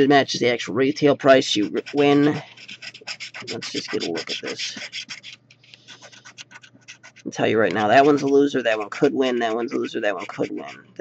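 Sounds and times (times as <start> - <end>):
lottery ticket being scratched: 1.2 - 11.0.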